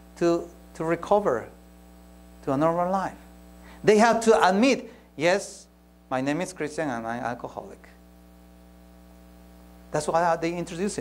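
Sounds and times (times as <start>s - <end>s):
electrical mains hum: 0.0s - 11.0s
man's voice: 3.8s - 8.0s, 10.0s - 11.0s.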